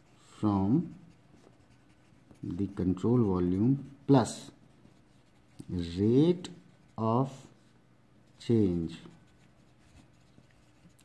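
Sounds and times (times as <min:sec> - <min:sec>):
pen scratching on paper: 0:00.0 - 0:06.0, 0:08.3 - 0:11.0.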